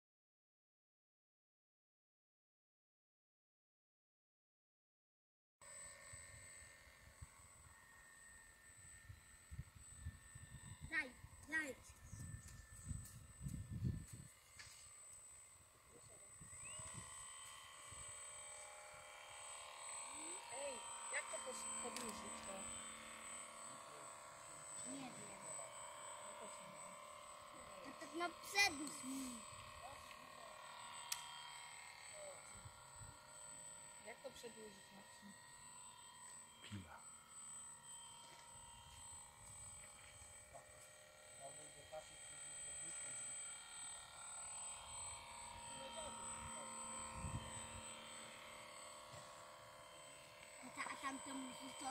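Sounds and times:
model boat motor whine: 0:05.6 - 0:51.9
wind rumble on microphone: 0:11.9 - 0:14.4.

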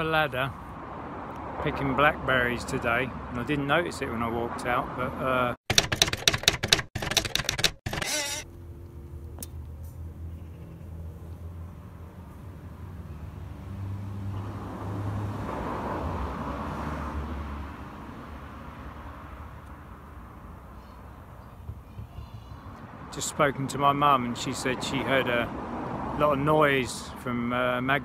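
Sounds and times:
low vehicle engine hum: 0:08.4 - 0:15.0.

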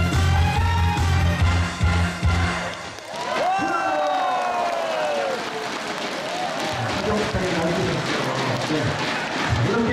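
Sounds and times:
audience applauding: 0:02.3 - 0:09.9.

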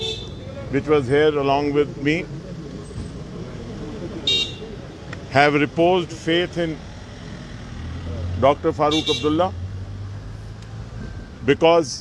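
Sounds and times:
faint distant voices: 0:00.0 - 0:09.4
traffic noise: 0:00.0 - 0:12.0.

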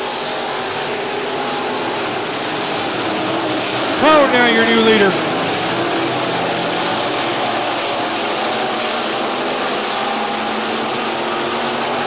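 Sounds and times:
race car engines: 0:00.0 - 0:12.0.

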